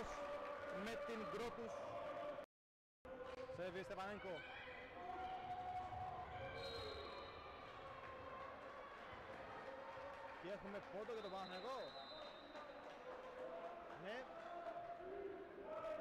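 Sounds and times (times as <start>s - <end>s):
sports hall ambience: 0.0s - 2.5s, 3.1s - 16.0s.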